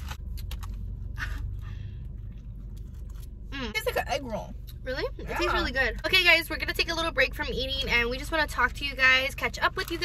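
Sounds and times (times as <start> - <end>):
low hum inside car: 0.0 - 10.0.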